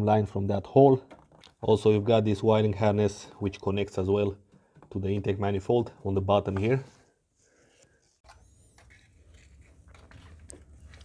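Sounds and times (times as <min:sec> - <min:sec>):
soft clicks and scrapes: 0:06.5 - 0:11.0.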